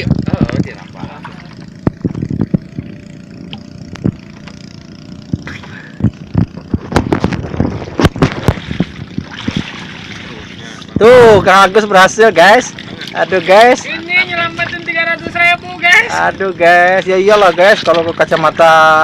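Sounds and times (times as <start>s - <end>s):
water sloshing and splashing: 0.0s - 19.0s.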